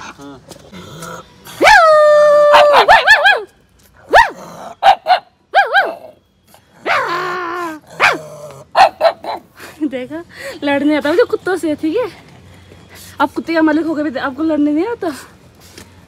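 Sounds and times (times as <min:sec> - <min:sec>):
dog barking: 0:02.5 - 0:03.4, 0:04.1 - 0:06.1, 0:08.0 - 0:09.4.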